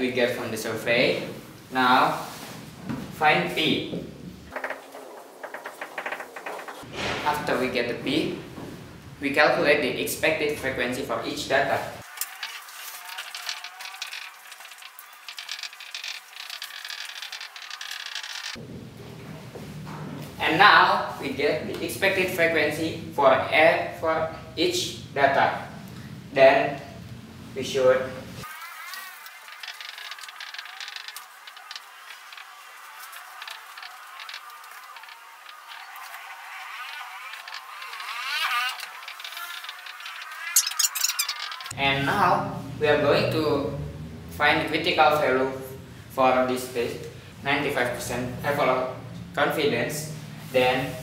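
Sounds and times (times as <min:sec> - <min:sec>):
marker squeaking on whiteboard: 0:04.5 - 0:06.9, 0:12.1 - 0:18.6, 0:28.4 - 0:41.8
marker scratching on whiteboard: 0:39.3 - 0:41.5.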